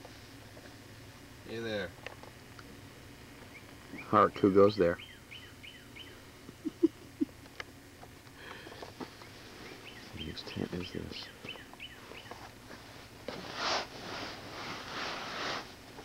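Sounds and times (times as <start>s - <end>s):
small birds chirping: 3.4s - 7.0s, 9.2s - 12.5s
tent fabric rustling: 12.8s - 16.0s.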